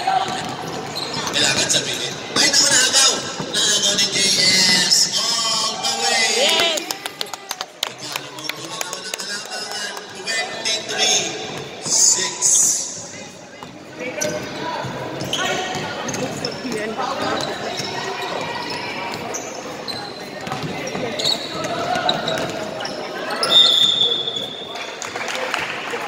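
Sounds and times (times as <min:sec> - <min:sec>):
voices echoing in a hall: 0:00.0 - 0:26.0.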